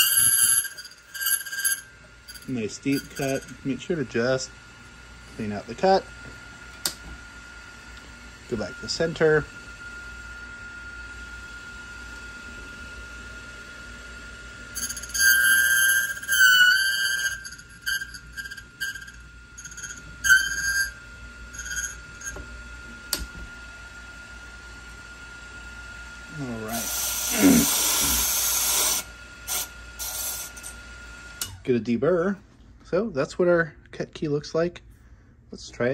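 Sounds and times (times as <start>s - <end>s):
cutting wheel grinding key: 0.0s - 3.6s, 14.8s - 22.4s.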